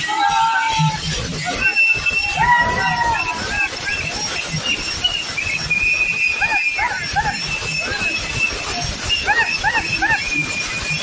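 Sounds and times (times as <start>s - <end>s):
crowd din: 0.0s - 11.0s
whistle blasts: 0.0s - 11.0s
rising and falling calls: 6.2s - 10.7s.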